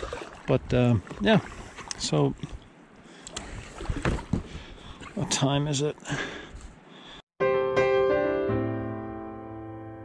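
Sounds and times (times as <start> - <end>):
paddle splashing water: 0.0 - 6.5
paddle knocks: 3.8 - 4.6.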